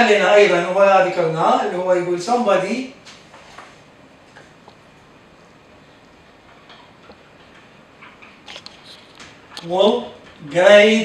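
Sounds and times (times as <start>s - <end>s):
marker pen squeaking on whiteboard: 7.6s - 9.7s.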